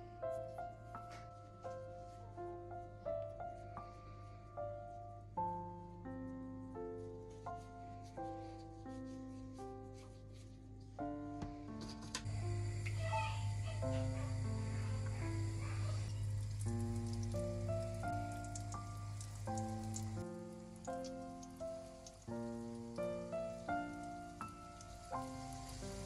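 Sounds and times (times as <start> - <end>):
background music melody: 0.0 - 26.0
dough frying in sizzling oil: 12.2 - 26.0.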